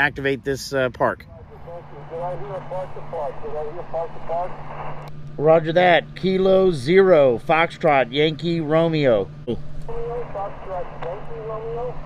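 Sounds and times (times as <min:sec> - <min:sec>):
radio band hiss: 0:01.2 - 0:12.0
faint radio voice: 0:01.3 - 0:04.7, 0:09.5 - 0:12.0.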